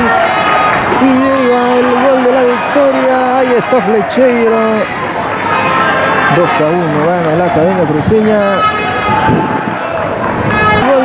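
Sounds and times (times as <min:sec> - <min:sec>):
steady noisy background: 0:00.0 - 0:11.0
man giving football commentary: 0:01.0 - 0:04.9, 0:06.3 - 0:08.7.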